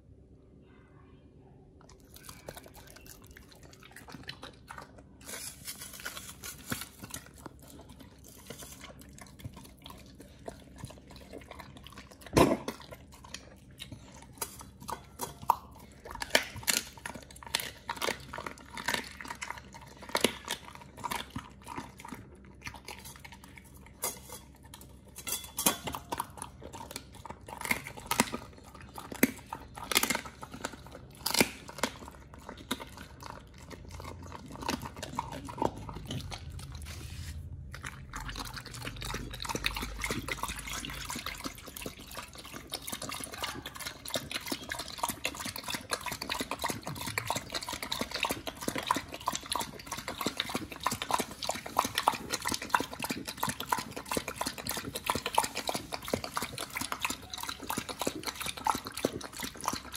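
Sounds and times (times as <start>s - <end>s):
dog chewing food: 1.8s - 59.9s
dog lapping water: 7.1s - 25.1s, 25.8s - 59.9s.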